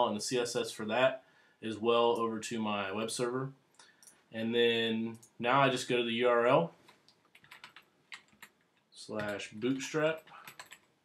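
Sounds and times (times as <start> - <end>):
computer keyboard keystrokes: 7.3 - 8.6, 9.2 - 10.9.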